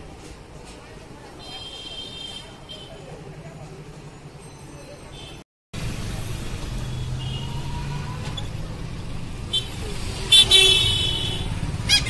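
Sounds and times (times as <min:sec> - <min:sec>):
street traffic: 0:00.0 - 0:12.0
low road rumble: 0:05.8 - 0:12.0
vehicle horn honking: 0:09.5 - 0:11.5.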